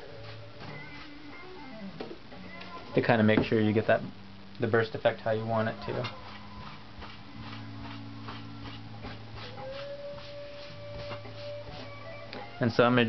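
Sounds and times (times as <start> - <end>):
steady low hum: 0.0 - 12.8
cloth rag rubbing wood: 5.8 - 12.0.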